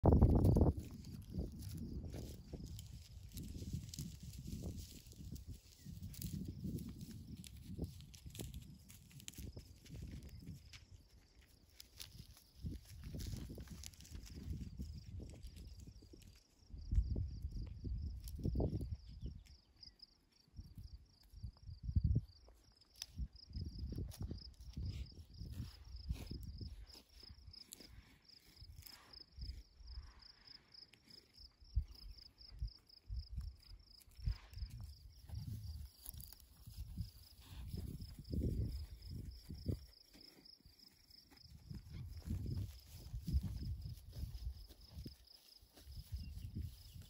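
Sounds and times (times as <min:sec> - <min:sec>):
wind buffeting microphone: 0:00.0 - 0:10.8, 0:12.2 - 0:19.4, 0:23.1 - 0:27.6, 0:31.7 - 0:35.9, 0:36.5 - 0:39.9, 0:41.4 - 0:47.0
insect chirping: 0:00.0 - 0:47.0
hooves scuffing stony ground: 0:00.1 - 0:17.1, 0:23.8 - 0:30.0, 0:32.8 - 0:47.0.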